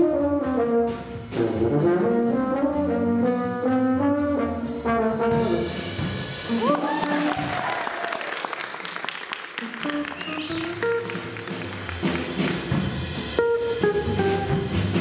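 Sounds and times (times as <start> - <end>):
live jazz band with brass: 0.0 - 15.0
audience applause: 6.5 - 12.8.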